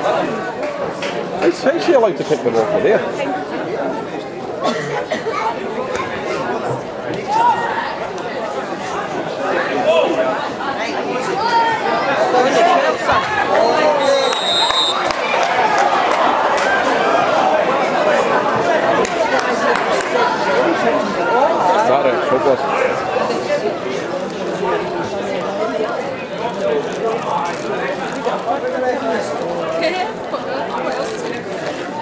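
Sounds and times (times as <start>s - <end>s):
many voices chattering: 0.0s - 32.0s.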